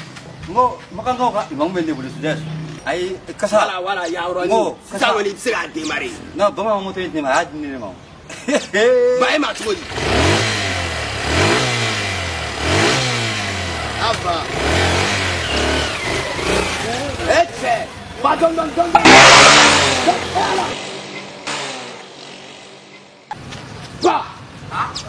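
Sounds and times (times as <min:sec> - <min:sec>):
small motorbike engine revving: 0:09.8 - 0:23.2
men shouting: 0:18.3 - 0:20.8
loud burst of noise: 0:19.0 - 0:23.2.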